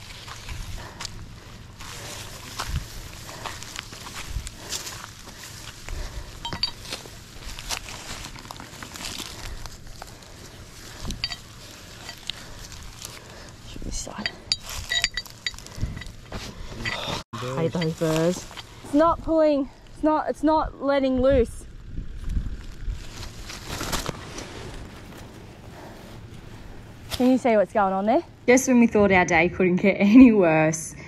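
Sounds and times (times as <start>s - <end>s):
footsteps through dry grass: 0.0s - 16.8s, 17.4s - 19.1s, 22.0s - 27.6s
light metallic clinks: 6.4s - 7.0s, 11.0s - 12.6s, 14.1s - 16.2s
straps and fittings handled: 6.4s - 10.2s, 10.8s - 18.8s.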